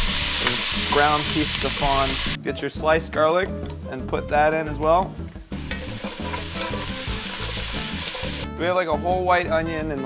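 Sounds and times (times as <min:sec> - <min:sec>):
garlic and onions sizzling in oil: 0:00.0 - 0:02.4, 0:05.5 - 0:08.5.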